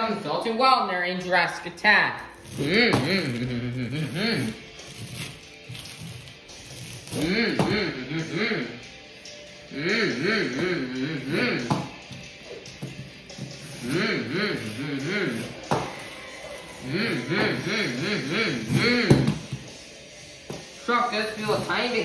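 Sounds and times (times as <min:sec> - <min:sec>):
boy imitating engine revving: 0:02.6 - 0:04.6, 0:07.2 - 0:08.8, 0:09.7 - 0:11.7, 0:13.8 - 0:15.6, 0:16.8 - 0:19.2.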